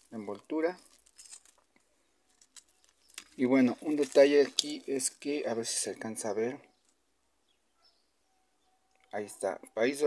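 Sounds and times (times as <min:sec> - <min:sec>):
plastic wrapper crinkling: 0:00.0 - 0:05.3.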